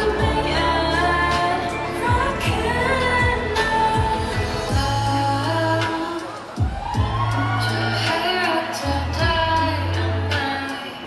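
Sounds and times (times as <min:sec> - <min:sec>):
pop backing track with bass beat: 0:00.0 - 0:11.0
woman singing into a microphone: 0:00.0 - 0:11.0.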